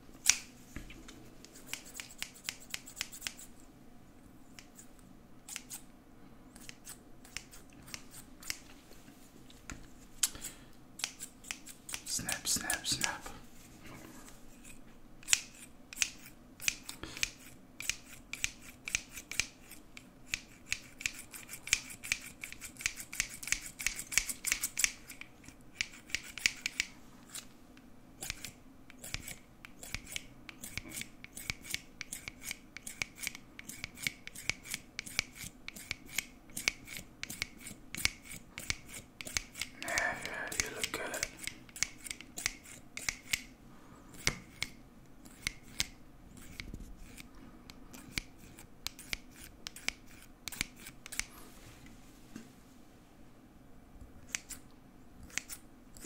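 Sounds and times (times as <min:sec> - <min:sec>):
scissors snipping hair: 0:00.2 - 0:00.5, 0:01.5 - 0:03.5, 0:06.6 - 0:08.6, 0:10.2 - 0:13.2, 0:14.6 - 0:27.5, 0:28.2 - 0:43.5, 0:44.2 - 0:47.3, 0:47.9 - 0:51.3, 0:55.2 - 0:56.0.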